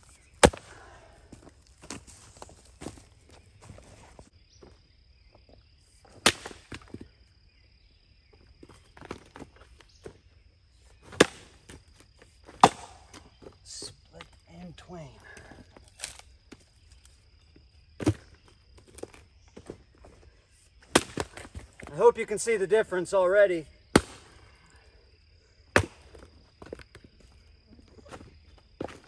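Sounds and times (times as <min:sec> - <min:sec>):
axe chopping wood: 0:00.4 - 0:00.7, 0:06.1 - 0:07.0, 0:11.0 - 0:11.8, 0:12.5 - 0:13.3, 0:18.0 - 0:18.3, 0:20.8 - 0:21.7, 0:23.9 - 0:24.3, 0:25.7 - 0:26.3.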